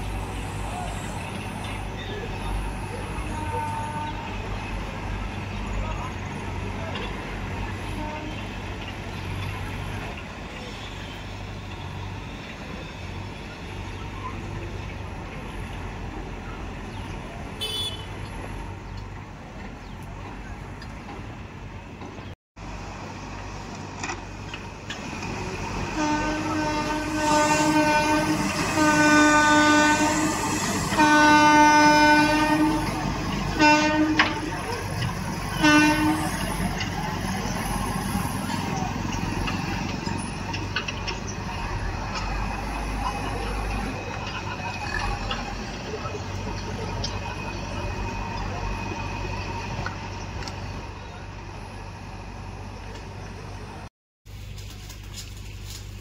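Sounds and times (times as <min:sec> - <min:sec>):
train horn blasts: 0:03.0 - 0:04.5, 0:07.9 - 0:08.6, 0:17.6 - 0:18.2, 0:25.8 - 0:34.7, 0:35.4 - 0:36.7.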